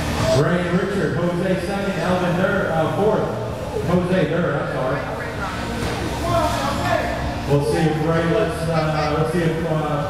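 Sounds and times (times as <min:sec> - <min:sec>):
chatter of voices: 0:02.2 - 0:10.0.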